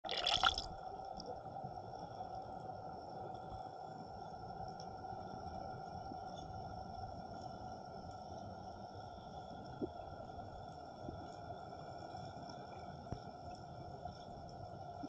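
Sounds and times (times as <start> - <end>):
underwater rush of noise: 0.0 - 0.7
muffled low water rumble: 0.4 - 15.0.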